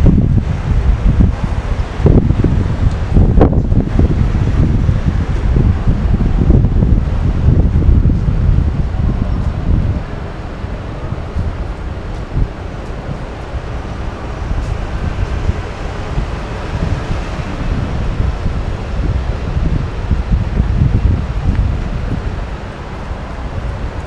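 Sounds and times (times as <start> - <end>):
street traffic: 0.0 - 24.0
wind buffeting microphone: 0.0 - 24.0
bus driving past: 8.4 - 24.0
cars driving past: 9.6 - 24.0.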